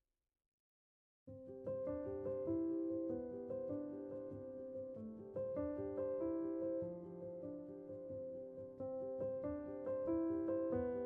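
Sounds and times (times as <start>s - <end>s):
soft piano music: 1.3s - 11.0s.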